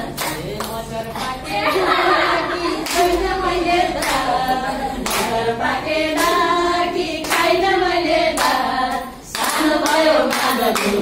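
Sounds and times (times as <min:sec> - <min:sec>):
hand claps: 0:00.0 - 0:01.4, 0:02.8 - 0:03.3, 0:04.0 - 0:05.4, 0:06.1 - 0:06.4, 0:07.2 - 0:07.6, 0:08.3 - 0:11.0
women singing folk song: 0:01.2 - 0:11.0.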